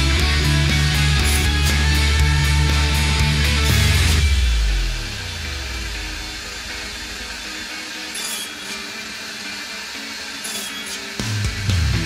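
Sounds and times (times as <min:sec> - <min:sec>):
table saw coasting down: 0:06.5 - 0:11.7.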